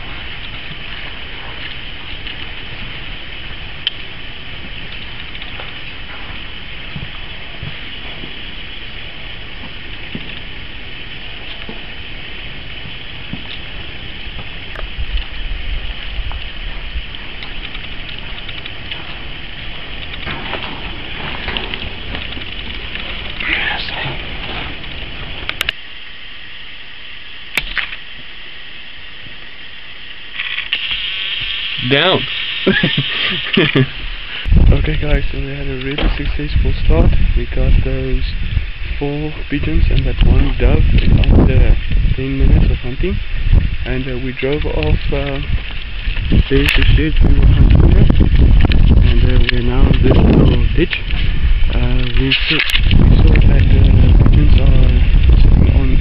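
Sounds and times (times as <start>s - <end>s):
scattered crackling: 0.0s - 26.0s, 30.3s - 56.0s
high background hiss: 0.0s - 56.0s.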